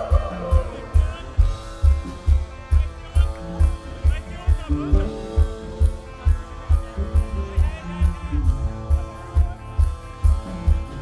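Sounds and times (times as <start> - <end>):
bass guitar: 0.0 - 11.0
electric guitars: 0.0 - 11.0.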